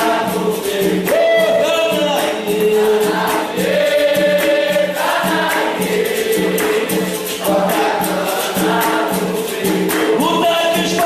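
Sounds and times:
chorus of voices singing: 0:00.0 - 0:11.0
pandeiro percussion beat: 0:00.0 - 0:11.0.

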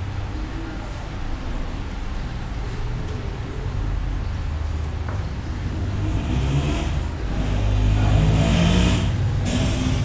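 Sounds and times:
motor vehicle engine accelerating: 0:05.7 - 0:10.0.

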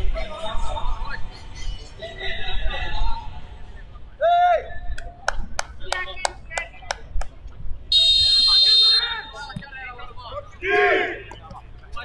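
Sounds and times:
faint players' voices: 0:00.0 - 0:12.0
referee's whistle long blast: 0:07.9 - 0:09.2.

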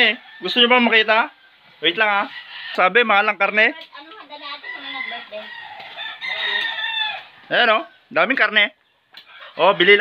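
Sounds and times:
rooster crowing: 0:00.0 - 0:01.5, 0:04.5 - 0:07.5.

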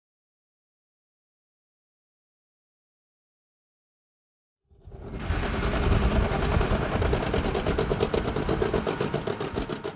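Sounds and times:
tank engine with rapid clatter: 0:04.8 - 0:09.9.

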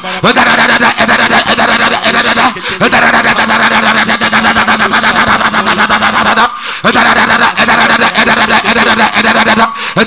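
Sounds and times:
man praying into microphone: 0:00.0 - 0:10.0.

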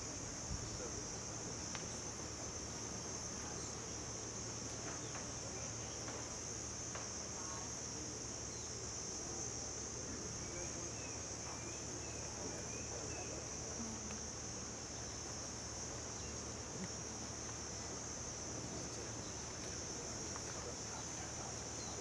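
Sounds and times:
faint background hiss: 0:00.0 - 0:22.0
high-pitched insect chorus: 0:00.0 - 0:22.0.

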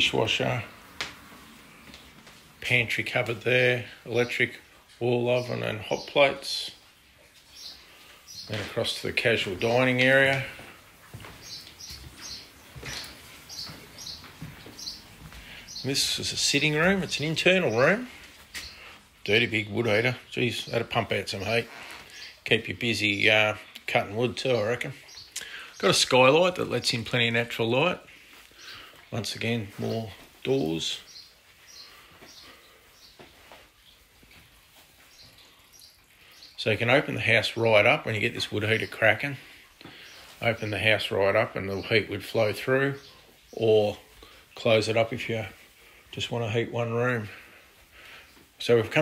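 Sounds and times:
faint footsteps: 0:00.0 - 0:06.4, 0:07.0 - 0:22.6, 0:24.9 - 0:36.3, 0:38.4 - 0:41.7, 0:42.3 - 0:49.0
small bird chirping: 0:07.2 - 0:09.0, 0:11.4 - 0:18.9, 0:29.8 - 0:37.0
faint soft footfalls: 0:10.0 - 0:17.2.

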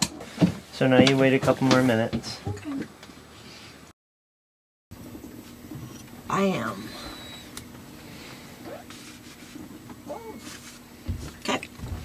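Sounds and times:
steady low hum: 0:05.0 - 0:12.0.

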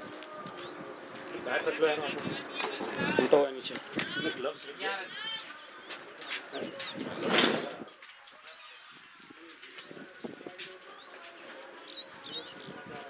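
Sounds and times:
birds chirping: 0:00.3 - 0:13.0.

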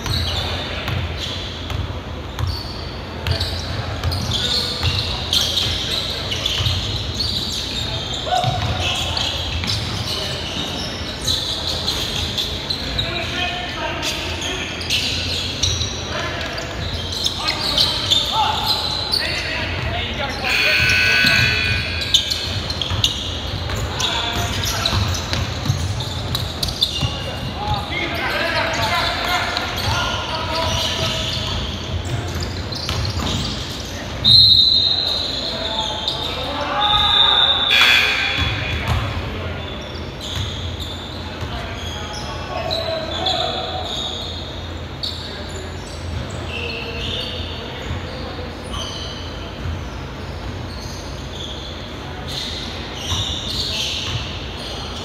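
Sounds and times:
sneakers squeaking: 0:00.0 - 0:55.0
players calling out: 0:03.4 - 0:40.9
basketball bouncing: 0:08.4 - 0:08.8, 0:20.7 - 0:27.8, 0:31.0 - 0:33.4
sharp high-pitched squeal: 0:20.4 - 0:23.2, 0:37.0 - 0:38.8.

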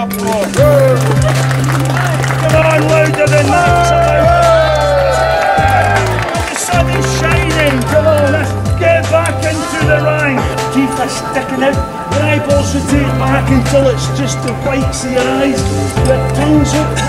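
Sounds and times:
held bass notes: 0:00.0 - 0:17.0
gliding melody line: 0:00.4 - 0:17.0.

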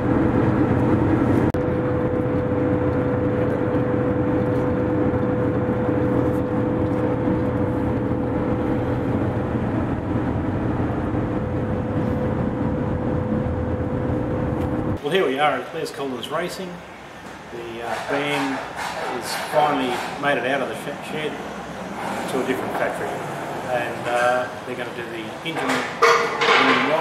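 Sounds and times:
road and engine drone in cabin: 0:00.0 - 0:15.0
constant high hum: 0:00.0 - 0:27.0.

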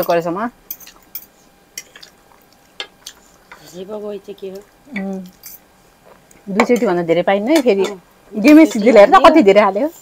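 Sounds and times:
voice: 0:06.5 - 0:10.0.

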